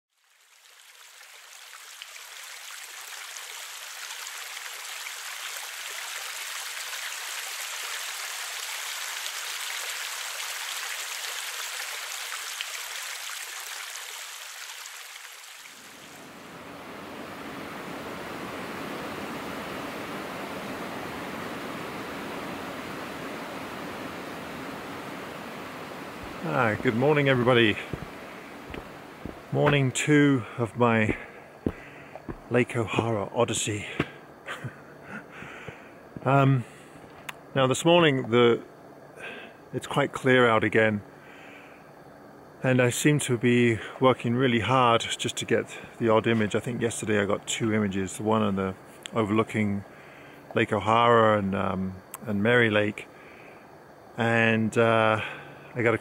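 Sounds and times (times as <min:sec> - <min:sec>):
shallow stream water running: 0:00.1 - 0:36.8.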